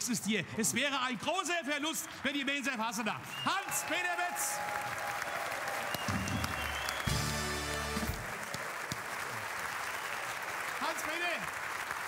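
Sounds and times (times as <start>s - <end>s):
audience applauding: 2.3s - 12.0s.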